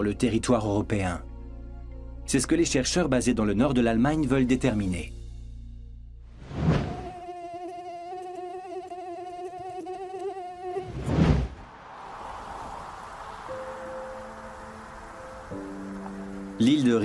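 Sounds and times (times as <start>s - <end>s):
rushing whoosh: 10.8s - 15.8s.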